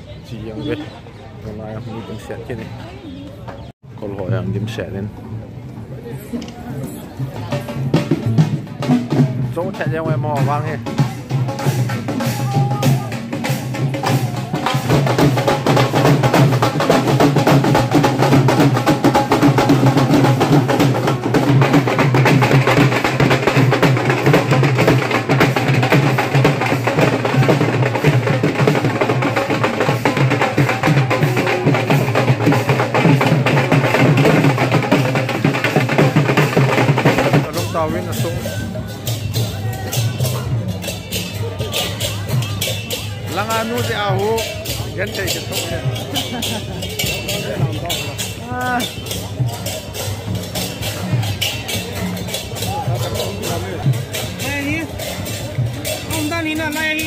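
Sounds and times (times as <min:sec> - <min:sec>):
drum-led music: 0:06.6 - 0:57.0.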